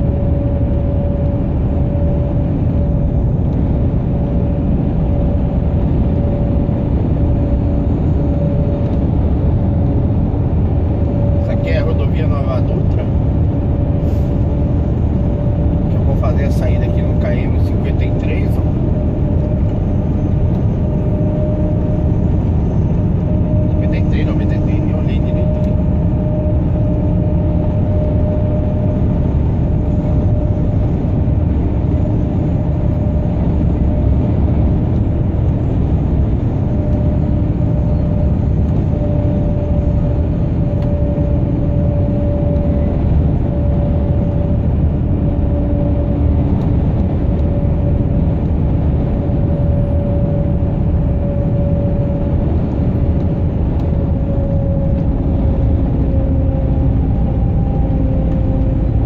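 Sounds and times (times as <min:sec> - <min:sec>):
truck diesel engine and road noise: 0:00.0 - 0:59.0.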